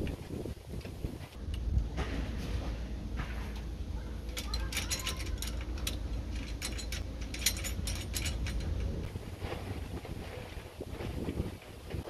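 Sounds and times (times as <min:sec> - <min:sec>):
wind rumbling on microphone: 0:00.0 - 0:03.9, 0:04.6 - 0:12.0
faint metal clicks and knocks: 0:03.5 - 0:09.1.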